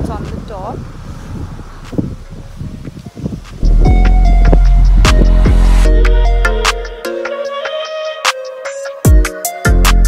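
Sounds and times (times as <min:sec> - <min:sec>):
wind buffeting microphone: 0:00.0 - 0:06.3
loud music with heavy bass: 0:03.6 - 0:10.0.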